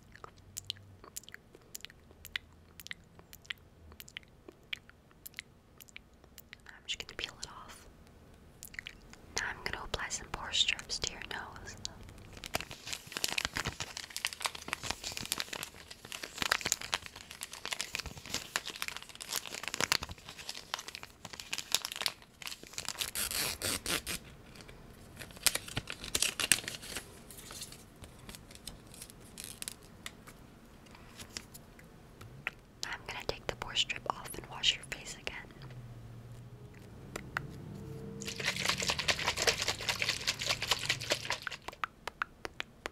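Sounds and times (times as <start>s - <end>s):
soft whispering: 6.5s - 7.9s, 9.3s - 12.1s, 32.8s - 35.7s
packaging crinkling: 12.1s - 29.9s, 38.2s - 41.8s.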